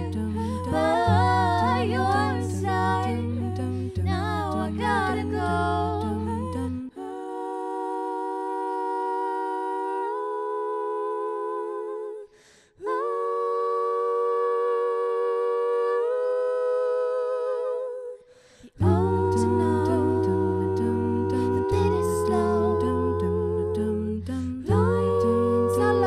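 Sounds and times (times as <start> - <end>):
female vocal quartet singing: 0.0 - 26.0.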